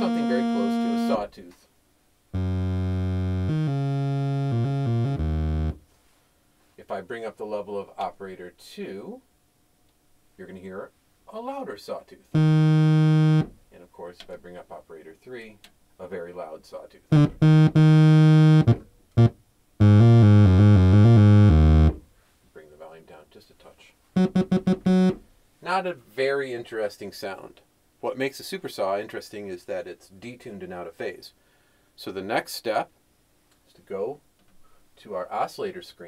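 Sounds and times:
low synthesizer notes: 0.0s - 1.3s, 2.4s - 5.8s, 12.4s - 13.5s, 17.1s - 22.0s, 24.2s - 25.2s.

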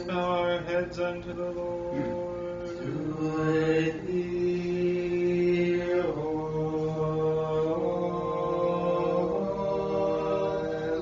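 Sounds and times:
voices singing slow chant: 0.0s - 11.0s.

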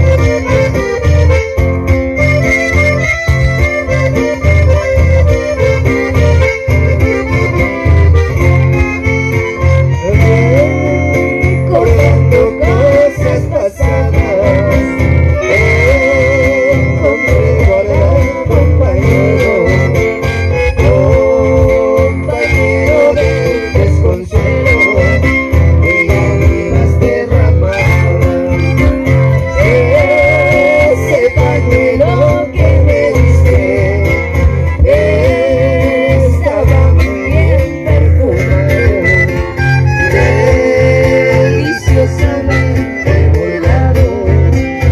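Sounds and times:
accordion melody: 0.0s - 44.9s
bandoneon melody: 0.0s - 44.9s
strummed acoustic guitars: 0.0s - 44.9s
woman singing: 10.0s - 20.1s, 20.8s - 28.1s, 29.5s - 39.4s, 40.1s - 44.9s.

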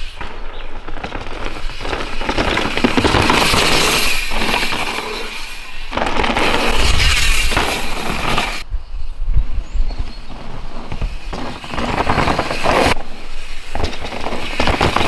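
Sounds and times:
bike tyres crunching over dirt: 0.0s - 8.7s, 9.6s - 15.0s.

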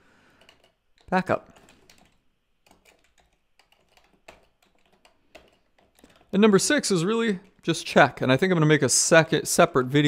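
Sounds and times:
faint keyboard keystrokes: 0.4s - 6.4s.

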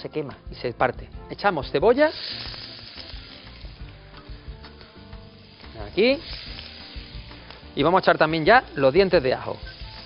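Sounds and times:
onion sizzling in hot oil: 1.4s - 10.0s.

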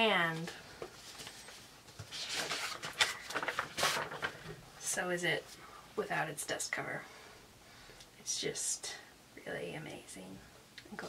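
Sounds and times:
paper dust jacket rustling: 0.9s - 4.5s.

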